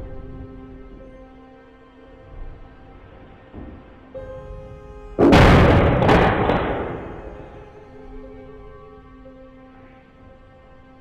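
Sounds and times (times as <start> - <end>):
blast crack: 5.2 - 7.8
loud blast bang: 5.2 - 7.8.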